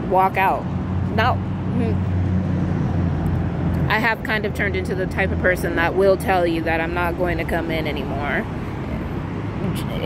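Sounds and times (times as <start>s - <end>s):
street traffic rumble: 0.0s - 10.0s
vehicle engine running nearby: 0.0s - 10.0s.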